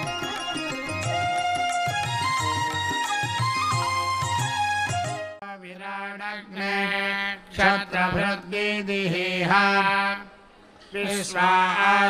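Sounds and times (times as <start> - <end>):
instrumental music: 0.0 - 5.4
mantras chanted: 5.4 - 12.0.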